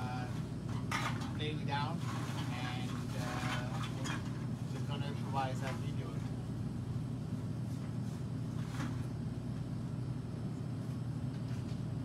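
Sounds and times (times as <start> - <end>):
low hum of amplifier noise: 0.0 - 12.0.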